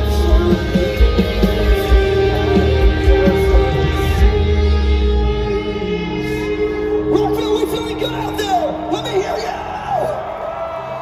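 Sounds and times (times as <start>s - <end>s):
crowd whooping: 5.8s - 11.0s.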